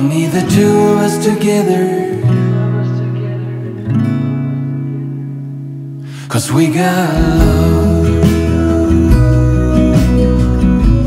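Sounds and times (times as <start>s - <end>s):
acoustic guitar strummed chords: 0.0s - 11.0s.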